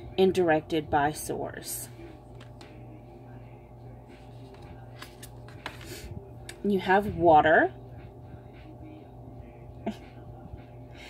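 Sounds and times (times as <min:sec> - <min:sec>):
low steady hum: 0:00.0 - 0:11.0
cards clicking and snapping: 0:05.0 - 0:05.9.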